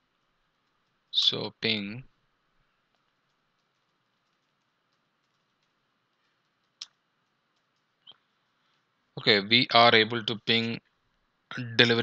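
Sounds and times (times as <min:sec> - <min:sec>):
computer keyboard typing: 0:02.9 - 0:08.0.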